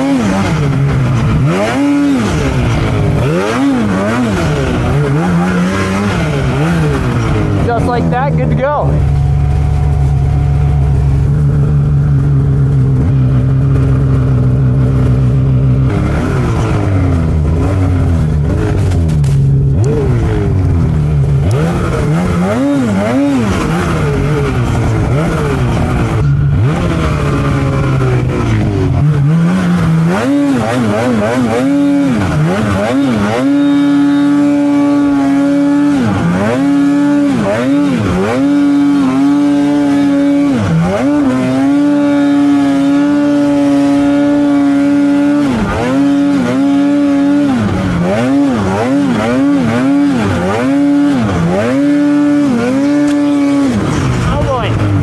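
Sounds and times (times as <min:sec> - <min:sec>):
snowmobile engine revving: 0:00.0 - 0:55.0.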